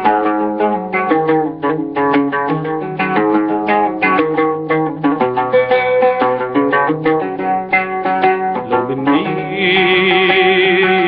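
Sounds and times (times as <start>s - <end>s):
plucked string instrument: 0.0s - 11.0s.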